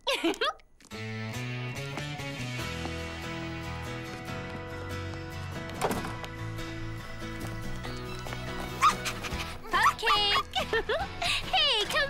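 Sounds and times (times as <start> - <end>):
background music: 0.9 - 12.0
cartoon puppy yipping: 8.7 - 10.0.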